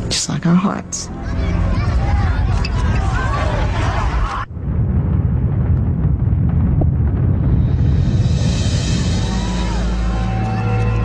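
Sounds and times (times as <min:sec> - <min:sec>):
deep cinematic boom rumble: 0:01.6 - 0:11.0.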